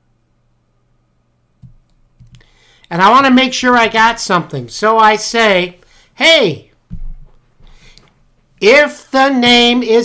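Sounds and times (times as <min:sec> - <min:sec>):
person speaking: 0:01.6 - 0:07.0, 0:07.8 - 0:10.0.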